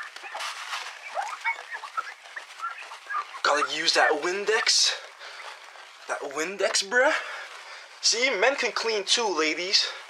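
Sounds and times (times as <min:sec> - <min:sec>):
squeaks of fabric on glass: 0:00.0 - 0:03.7.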